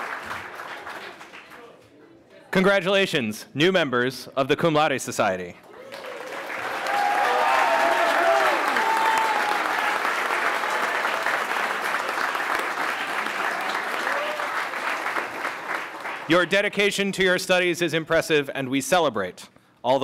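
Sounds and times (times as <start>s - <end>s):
audience applauding: 0.0s - 1.8s, 5.6s - 16.5s.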